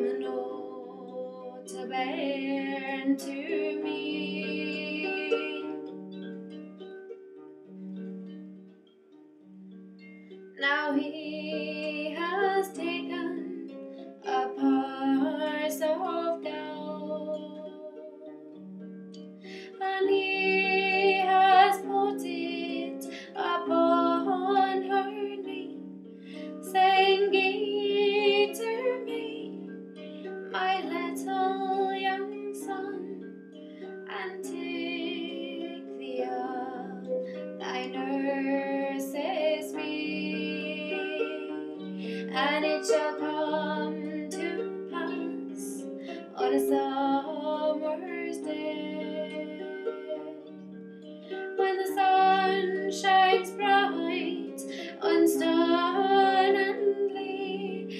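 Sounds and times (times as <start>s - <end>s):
woman singing: 0.0s - 5.9s, 10.6s - 18.3s, 19.5s - 25.8s, 26.5s - 29.7s, 30.5s - 33.3s, 34.0s - 50.5s, 51.6s - 57.9s
harp plucked: 0.0s - 57.9s.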